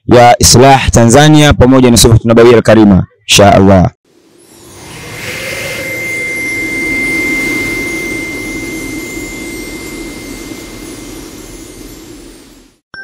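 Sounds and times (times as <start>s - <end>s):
synthetic whoosh with high whistle: 4.1s - 12.8s.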